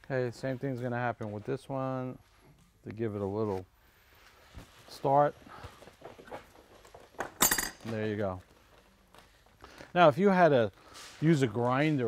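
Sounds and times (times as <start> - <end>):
ringing metal clink: 7.4 - 7.8.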